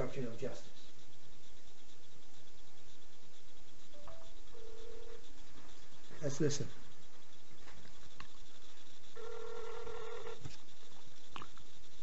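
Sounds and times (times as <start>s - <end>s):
telephone ringback tone: 4.1s - 5.2s, 9.2s - 10.4s.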